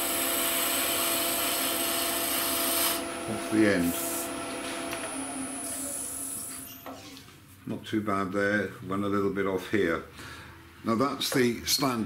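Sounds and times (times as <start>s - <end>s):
wood lathe motor hum: 0.0s - 6.7s.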